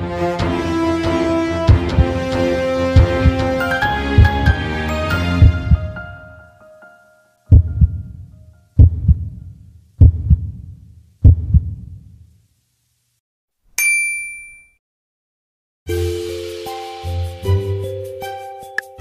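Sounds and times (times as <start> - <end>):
background music: 0.0 - 8.8, 15.9 - 19.0
low deep hits: 5.4 - 6.0, 7.5 - 8.2, 8.8 - 12.0
bright bell-like ding: 13.8 - 14.8.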